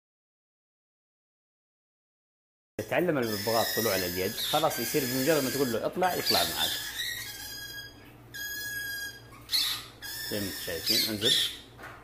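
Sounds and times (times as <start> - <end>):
parrot calling: 3.2 - 11.8.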